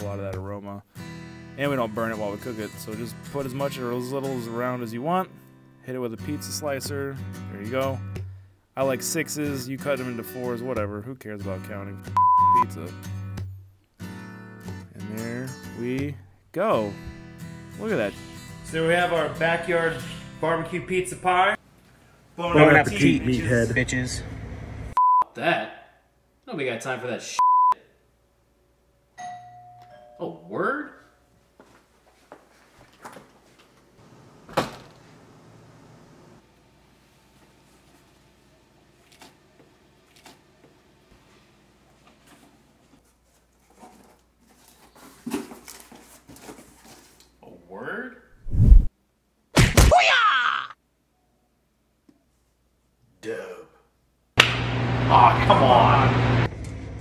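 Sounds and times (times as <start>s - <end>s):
doorbell chime ringing: 29.2s - 30.5s.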